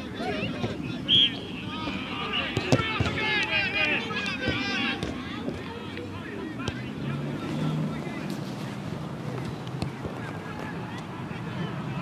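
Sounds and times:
distant players shouting: 0:00.0 - 0:08.2.

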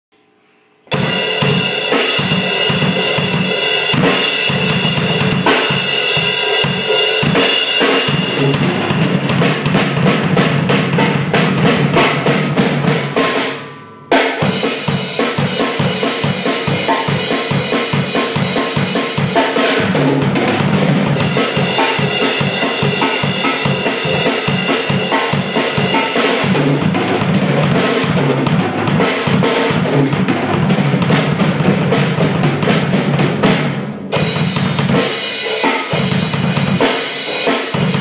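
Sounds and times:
drum kit playing a beat: 0:00.9 - 0:38.0.

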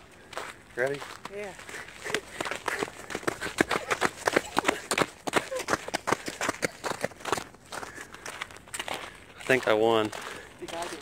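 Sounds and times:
boots crunching on salt crust: 0:07.8 - 0:11.0.

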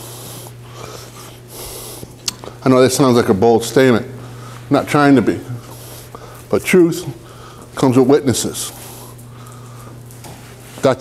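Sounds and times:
man breathing: 0:00.0 - 0:02.6, 0:04.2 - 0:04.7, 0:05.5 - 0:06.5, 0:07.2 - 0:07.8, 0:08.7 - 0:10.0
low electrical hum: 0:00.0 - 0:11.0.

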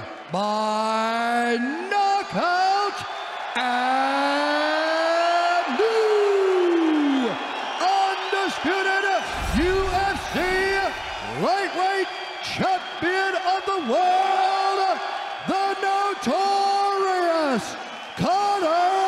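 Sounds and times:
crowd noise: 0:06.8 - 0:16.5
low rumble: 0:09.3 - 0:11.4.

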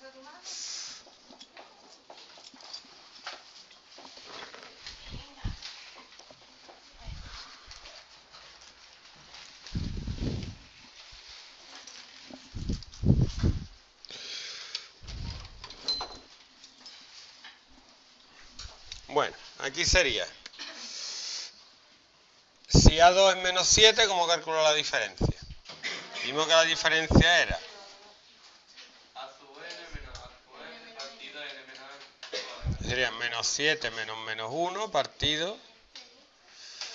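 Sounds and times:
short hissy bursts: 0:00.3 - 0:01.1, 0:20.7 - 0:21.7.

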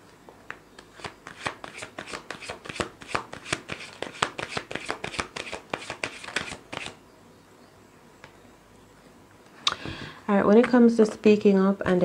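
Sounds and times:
cards being shuffled: 0:00.5 - 0:07.0.

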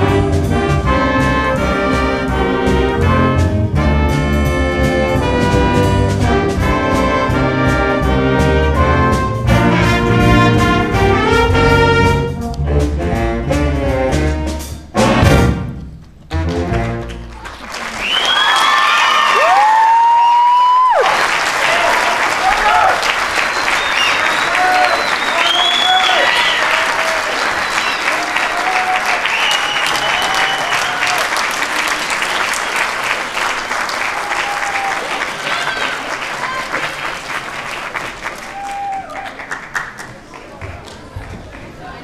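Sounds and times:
audience applause: 0:16.9 - 0:42.0
audience cheering and whooping: 0:17.4 - 0:37.3, 0:38.2 - 0:39.6.

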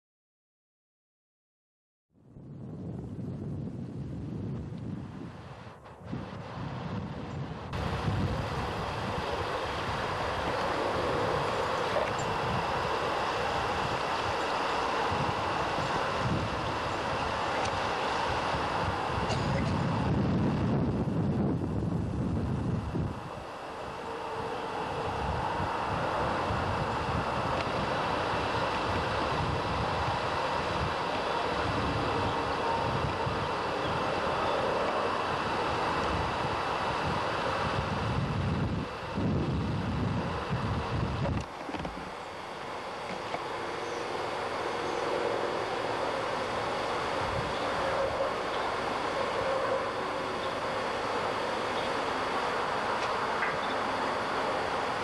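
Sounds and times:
wind buffeting microphone: 0:02.3 - 0:55.0.

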